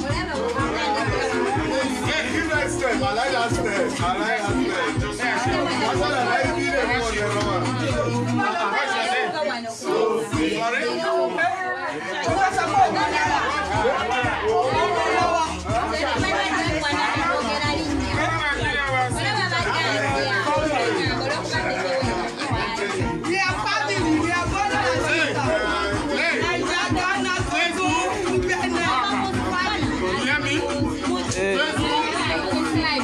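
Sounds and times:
music with steady bass beat: 0:00.0 - 0:08.6, 0:10.2 - 0:10.8, 0:12.2 - 0:33.0
people chattering: 0:00.0 - 0:33.0.

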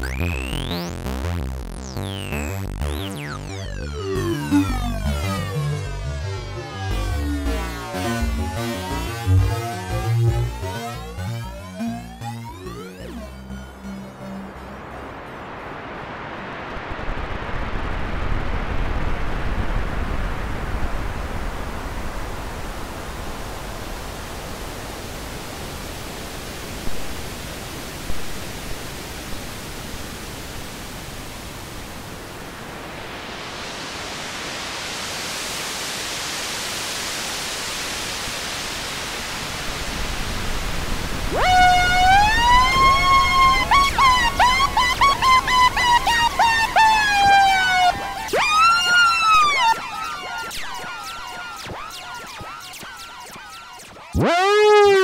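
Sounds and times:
filtered synth noise hiss: 0:00.0 - 0:55.0
wavering gliding synth tone: 0:41.3 - 0:51.8, 0:54.2 - 0:55.0.

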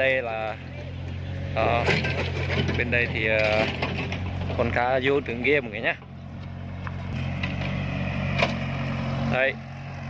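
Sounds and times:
excavator diesel engine running: 0:00.0 - 0:10.0.

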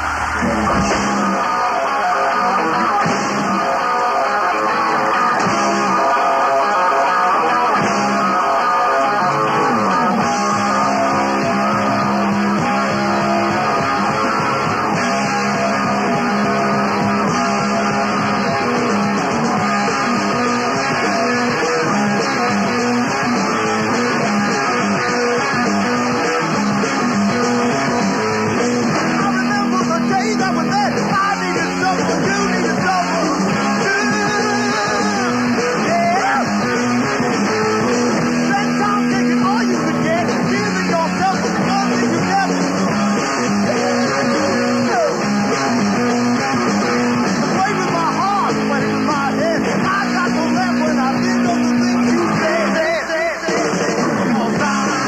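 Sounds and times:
guitar-driven rock music: 0:00.0 - 0:55.0.

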